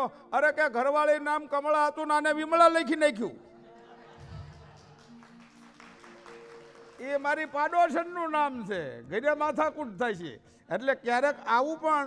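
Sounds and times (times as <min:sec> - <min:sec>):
man telling a story: 0:00.0 - 0:03.4, 0:07.0 - 0:12.0
scattered clapping: 0:04.5 - 0:08.0.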